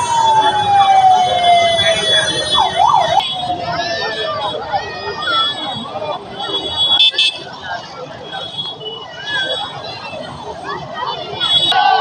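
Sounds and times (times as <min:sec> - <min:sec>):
siren winding down: 0:00.0 - 0:03.2
large crowd chatter: 0:00.0 - 0:12.0.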